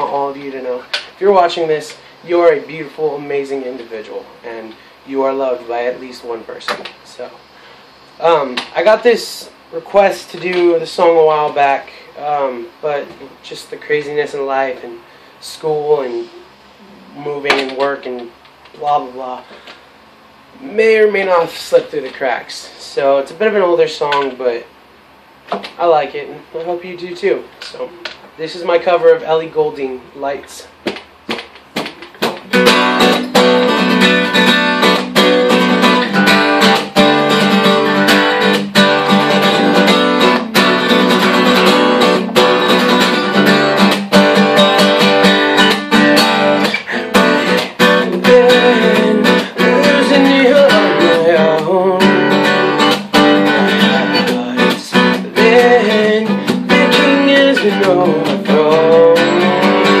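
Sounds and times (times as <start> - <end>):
acoustic guitar strumming: 30.8 - 60.0
wordless voice singing: 47.8 - 60.0.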